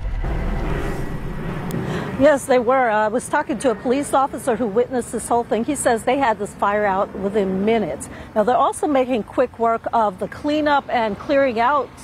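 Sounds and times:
low engine-like rumble: 0.0s - 12.0s.

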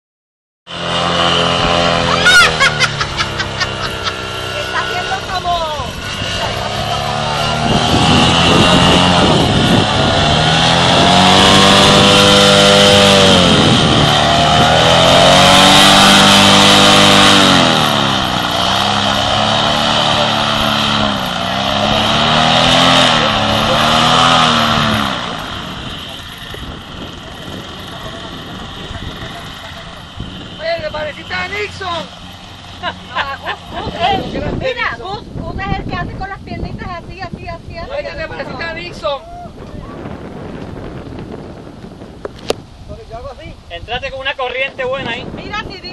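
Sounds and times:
paramotor engine and propeller: 0.7s - 45.9s.

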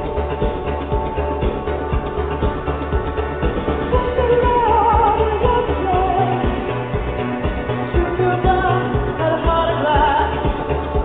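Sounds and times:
bass line: 0.0s - 11.0s
drum beat: 0.0s - 11.0s.

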